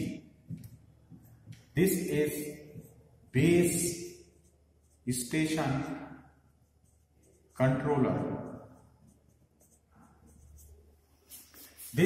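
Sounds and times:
marker pen scratching whiteboard: 0.0s - 12.0s.

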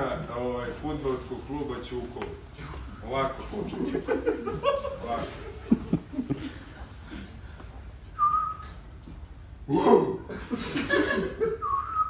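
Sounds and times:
faint low room hum: 0.0s - 12.0s
person whistling a note: 8.2s - 8.8s, 11.6s - 12.0s.

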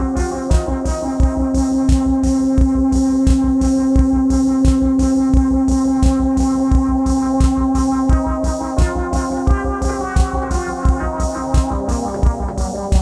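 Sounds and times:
drum machine beat: 0.0s - 13.0s
synth notes: 0.0s - 13.0s.

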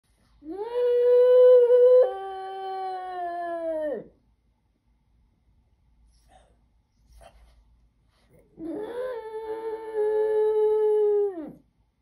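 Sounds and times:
dog howling: 8.6s - 11.6s.

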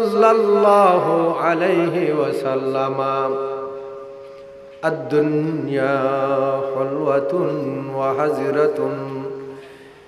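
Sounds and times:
man chanting recitation: 0.0s - 3.9s, 4.8s - 9.6s.

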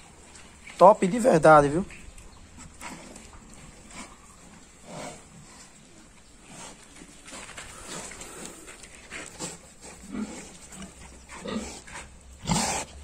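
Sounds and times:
pig snorting: 2.0s - 13.0s
pig grunting: 2.6s - 5.8s, 6.4s - 13.0s.

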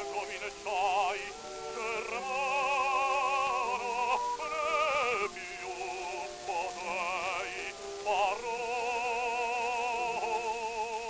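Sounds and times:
orchestra: 0.0s - 11.0s
record surface hiss: 0.0s - 11.0s.

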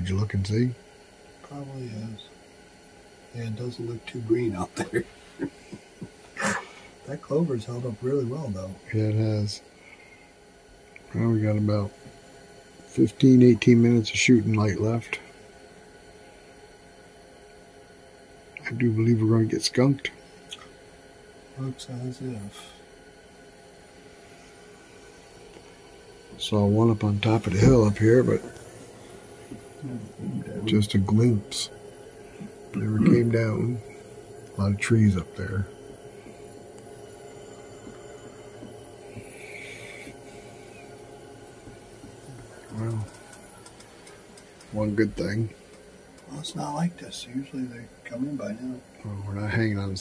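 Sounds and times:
faint steady hiss: 0.0s - 50.0s
steady low hum: 0.0s - 50.0s.

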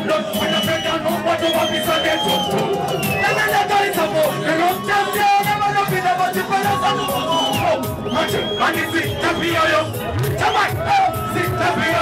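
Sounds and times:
crowd noise: 0.0s - 12.0s
dancehall music with bass: 0.0s - 12.0s
shouted voices: 0.0s - 12.0s.

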